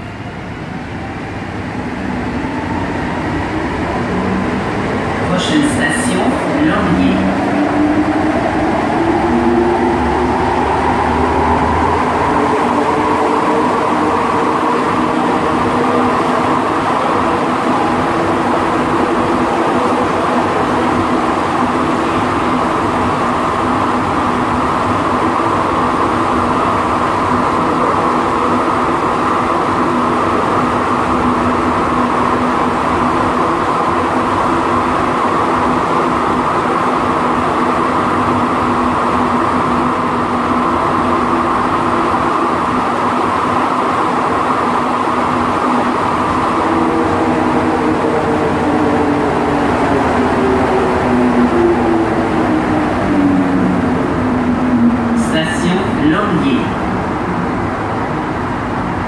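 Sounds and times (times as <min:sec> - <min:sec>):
train rumbling at speed: 0:00.0 - 0:59.0.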